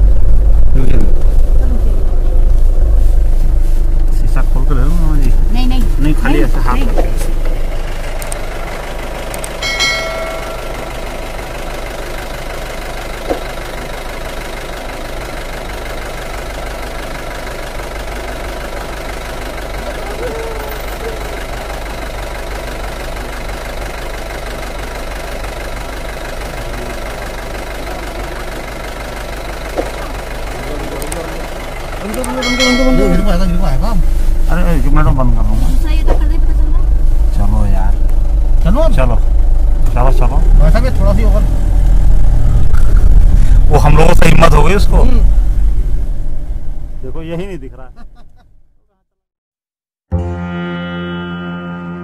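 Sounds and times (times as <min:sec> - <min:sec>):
vehicle engine idling inside: 0:00.0 - 0:49.0.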